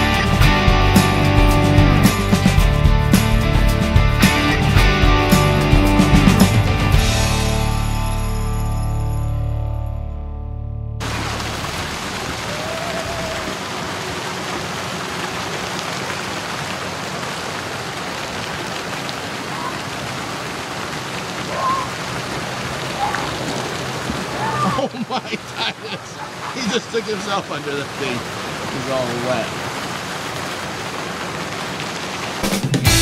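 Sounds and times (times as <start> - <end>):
water fountains splashing: 11.0 - 33.0
children calling: 12.4 - 14.4, 19.3 - 20.6, 21.4 - 22.1, 22.8 - 23.6, 24.2 - 28.0
voices: 24.2 - 29.6.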